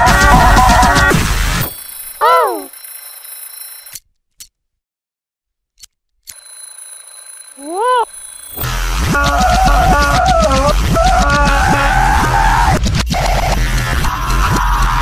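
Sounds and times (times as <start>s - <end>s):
cartoon music: 2.2s - 2.7s, 7.6s - 8.1s, 9.0s - 12.3s.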